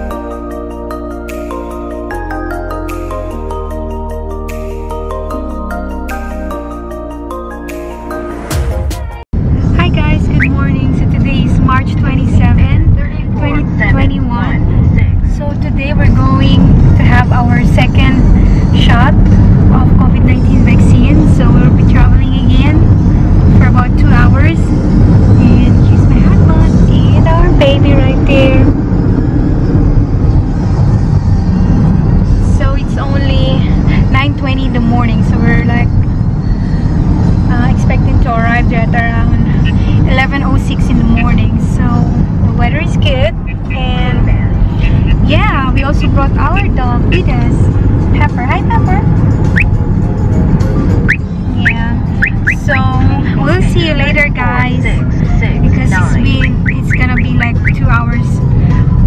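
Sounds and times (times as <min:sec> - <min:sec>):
car road rumble: 0:09.2 - 0:59.0
woman talking: 0:09.8 - 0:18.2, 0:25.4 - 0:28.7, 0:37.5 - 0:47.6, 0:52.6 - 0:58.4.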